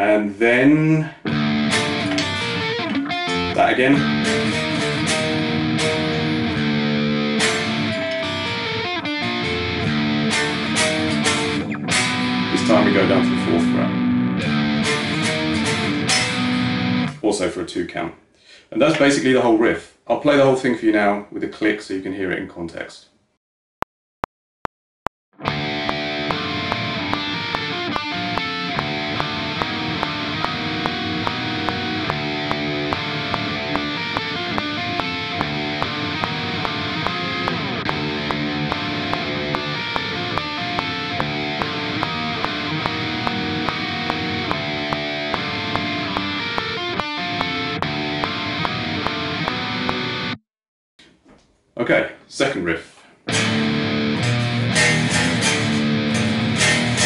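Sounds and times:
distorted electric guitar riff: 1.1 - 17.2, 25.4 - 50.4, 53.3 - 57.0
metronome click: 1.6 - 6.6, 25.5 - 50.3.

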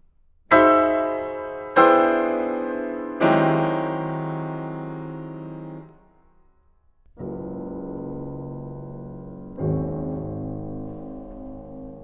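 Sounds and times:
piano chords: 0.5 - 6.3, 7.0 - 12.0.

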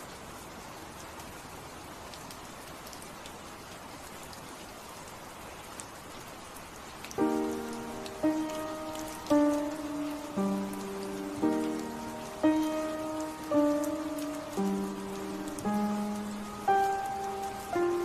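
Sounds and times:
steady rain: 0.0 - 18.0
raindrop ticks: 5.7 - 18.0
slow piano music: 7.1 - 18.0.

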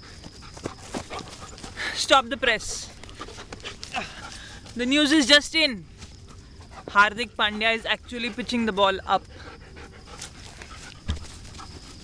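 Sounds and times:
dog panting: 0.0 - 2.0, 2.6 - 4.8, 6.1 - 12.0
low thump: 11.0 - 11.4.

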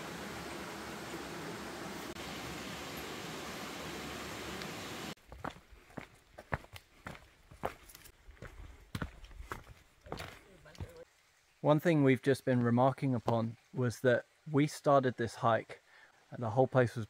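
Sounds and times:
stream rushing: 0.0 - 5.2
footsteps on dirt trail: 5.1 - 11.0.

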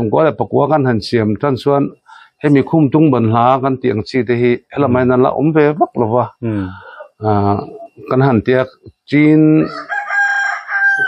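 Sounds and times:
man's drawn-out voice: 4.7 - 9.8
rooster crowing: 9.6 - 11.0.

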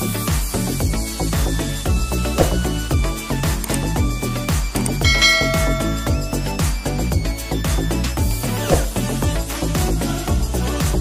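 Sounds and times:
bright bell chime: 5.1 - 6.6.

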